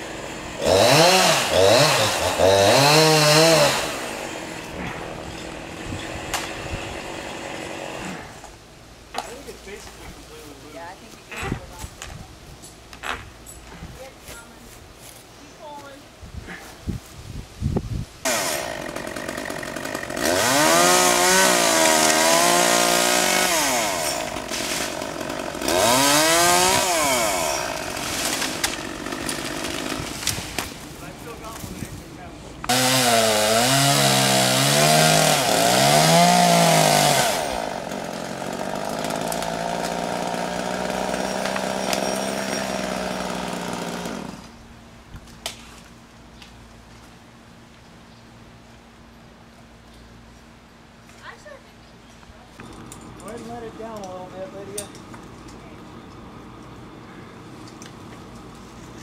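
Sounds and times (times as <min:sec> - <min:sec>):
chainsaw engine revving: 0:00.0 - 0:08.4, 0:18.2 - 0:30.4, 0:32.7 - 0:44.6.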